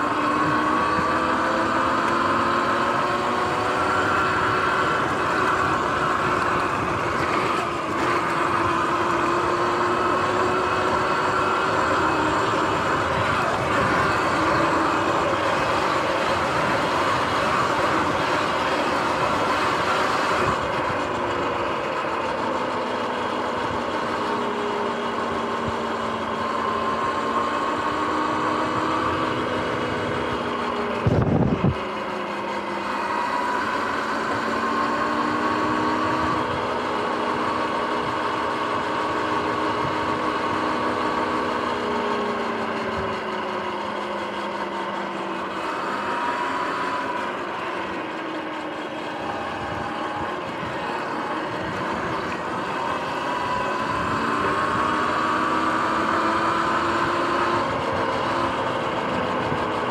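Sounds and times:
electric motor whine: 0:00.0 - 0:59.9.

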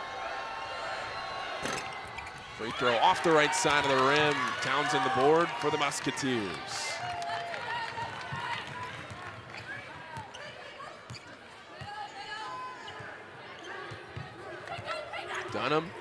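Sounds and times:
crowd and players' voices: 0:00.0 - 0:16.0.

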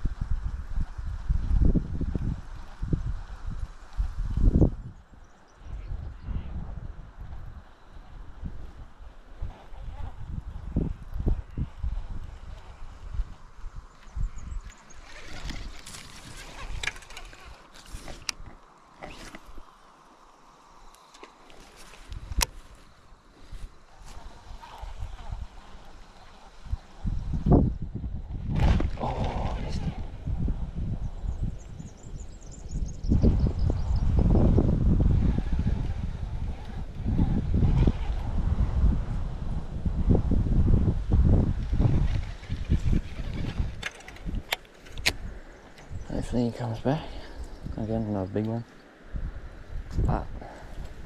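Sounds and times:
wind buffeting microphone: 0:00.0 - 0:19.7, 0:21.8 - 0:51.0.

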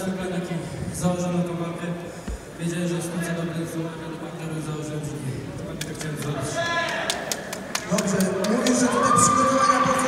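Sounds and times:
hand clapping: 0:05.8 - 0:08.8.

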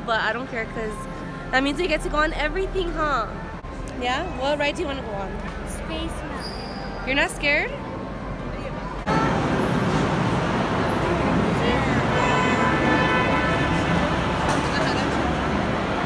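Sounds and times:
crowd chatter: 0:00.0 - 0:16.0
ride cars rolling: 0:09.0 - 0:16.0.

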